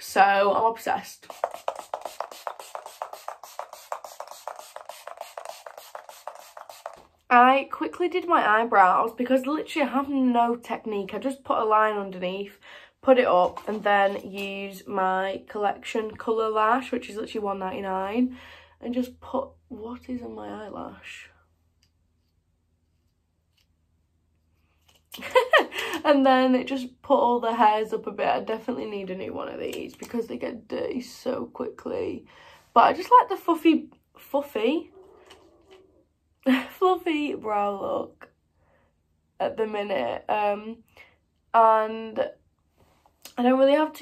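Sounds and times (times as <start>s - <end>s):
mist bottle hissing sprays: 1.2s - 7.0s.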